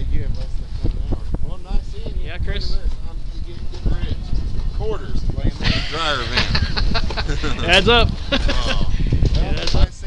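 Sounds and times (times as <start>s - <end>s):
man talking: 0.0s - 10.0s
wind rumble on microphone: 0.0s - 10.0s.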